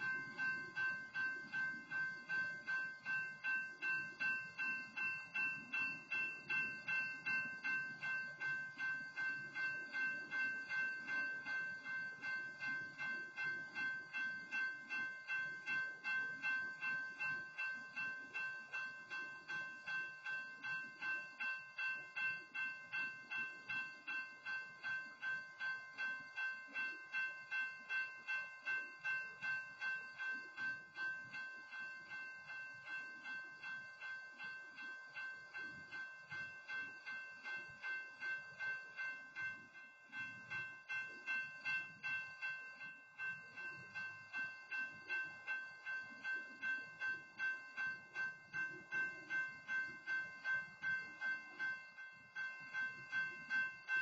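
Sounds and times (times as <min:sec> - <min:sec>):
crossing warning bell ringing: 0:00.0 - 0:54.0.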